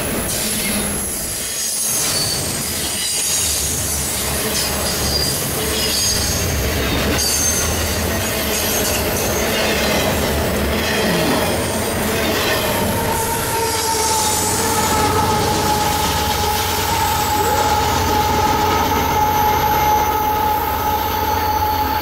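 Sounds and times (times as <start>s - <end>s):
diesel locomotive droning: 3.7s - 22.0s
high-pitched wheel squeal: 12.3s - 22.0s.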